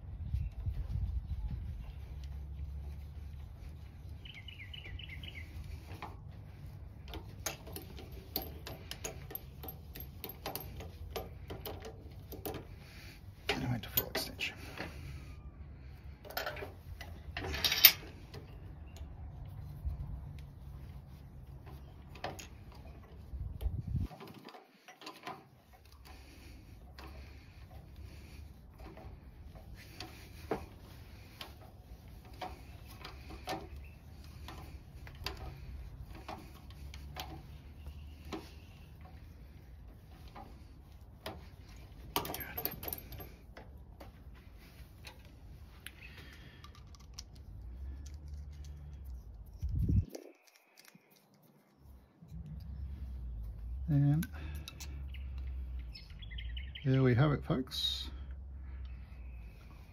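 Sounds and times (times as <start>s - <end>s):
small clicks of pen parts pressed: 46.3s - 51.4s.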